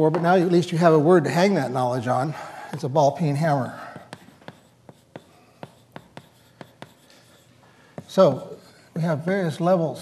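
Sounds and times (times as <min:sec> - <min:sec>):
chalk tapping on a blackboard: 0:03.8 - 0:08.8.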